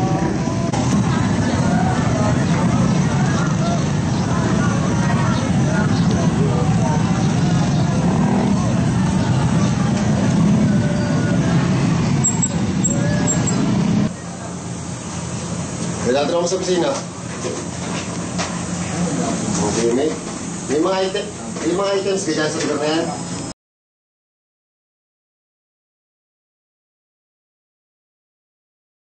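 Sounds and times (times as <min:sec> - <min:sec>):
many voices talking: 0:00.0 - 0:23.5
motor vehicles running: 0:00.0 - 0:23.5.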